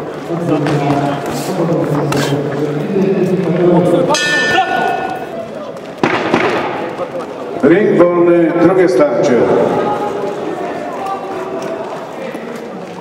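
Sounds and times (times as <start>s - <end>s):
boxing ring bell: 4.1s - 5.0s.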